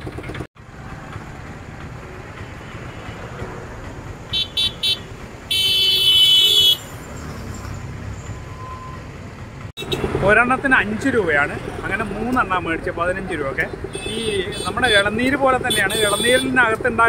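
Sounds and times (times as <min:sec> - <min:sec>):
road traffic rumble: 0:00.0 - 0:17.0
vehicle horn tooting: 0:04.3 - 0:07.0, 0:14.0 - 0:16.6.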